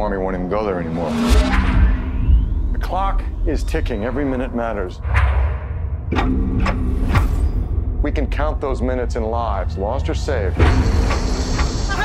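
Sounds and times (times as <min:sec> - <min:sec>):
held low tone: 0:00.0 - 0:08.3
low rumbling drone: 0:00.0 - 0:11.9
falling sweep: 0:00.6 - 0:04.2
sharp hits: 0:00.6 - 0:08.0.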